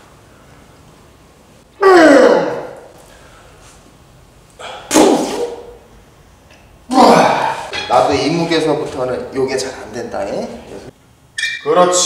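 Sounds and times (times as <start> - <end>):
man groaning with effort: 1.8 - 2.9, 6.9 - 7.7.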